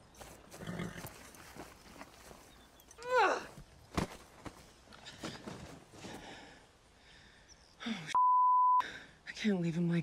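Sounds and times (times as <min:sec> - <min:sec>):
footsteps running on grass: 0:00.1 - 0:02.8.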